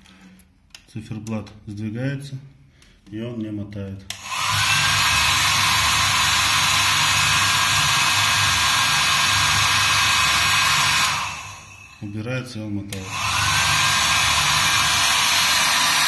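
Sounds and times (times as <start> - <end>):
electric air blower running: 4.1 - 12.1, 12.9 - 16.0.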